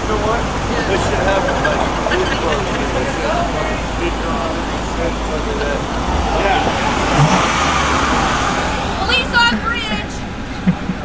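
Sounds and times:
car driving past: 0.0 - 11.0
people's voices: 0.0 - 11.0.

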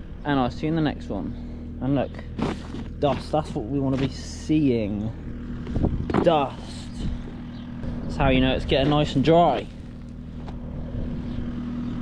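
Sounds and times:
farm machinery engine humming: 0.0 - 12.0.

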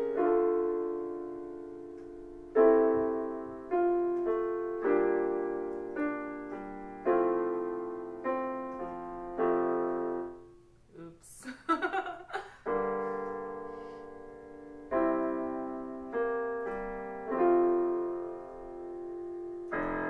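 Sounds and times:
digital piano chords: 0.0 - 10.9, 12.2 - 20.0.

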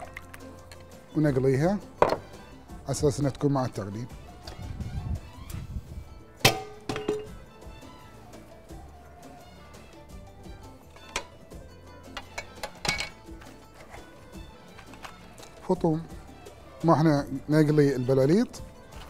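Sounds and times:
soft background music: 0.0 - 19.0
metal cookware clanking: 6.4 - 7.4, 12.1 - 14.1.

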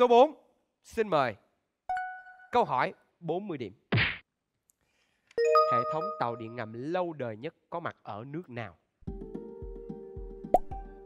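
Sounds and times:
synth thinking music: 5.4 - 6.8.

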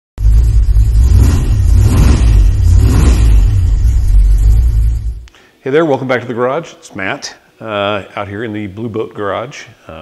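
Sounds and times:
car engine revving: 0.2 - 5.2.

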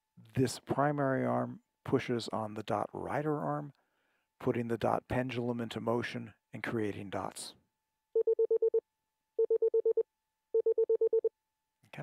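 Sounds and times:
morse code dot beeps: 8.2 - 8.8, 9.4 - 10.0, 10.6 - 11.3.

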